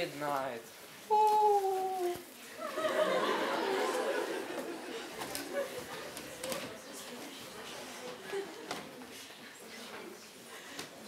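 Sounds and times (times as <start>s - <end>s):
crowd chattering in a hall: 0.0s - 11.0s.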